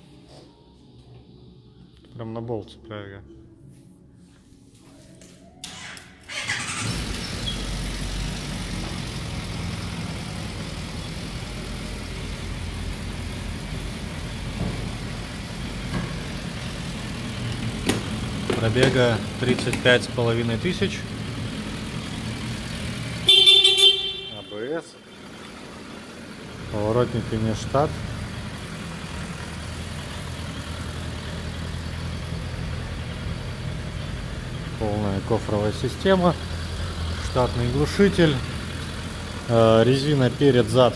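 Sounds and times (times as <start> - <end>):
motorcycle engine cranking: 5.6 - 8.1
motorcycle engine idling: 6.3 - 40.9.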